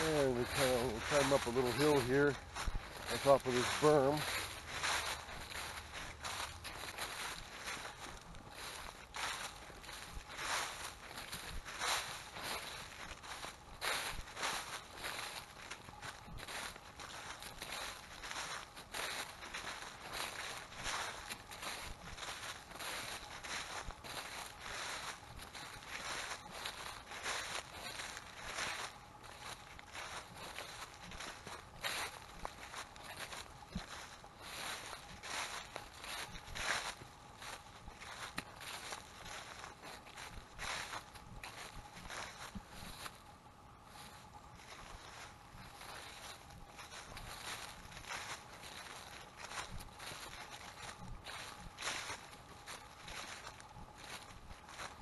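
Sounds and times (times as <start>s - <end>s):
footsteps through dry leaves: 0.0s - 55.0s.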